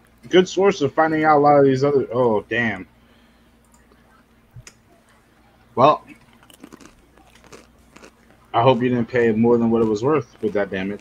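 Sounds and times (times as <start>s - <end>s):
faint crackles and clicks: 6.0s - 11.0s.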